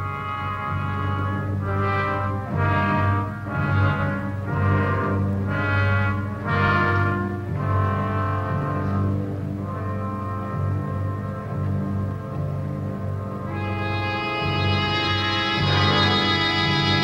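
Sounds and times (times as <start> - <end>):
orchestral brass score: 0.0 - 17.0.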